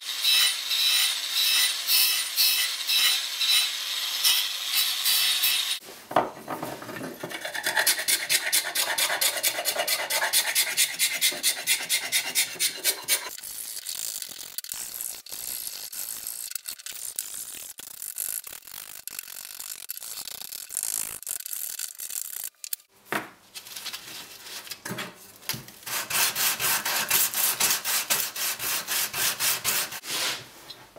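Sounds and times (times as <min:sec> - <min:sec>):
metal ruler scraping wood: 0:06.7 - 0:13.4.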